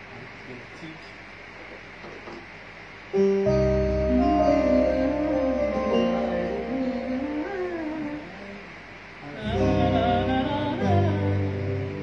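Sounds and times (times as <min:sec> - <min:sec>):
electronic keyboard chords: 0:03.1 - 0:08.2, 0:09.4 - 0:12.0
man singing: 0:04.1 - 0:12.0.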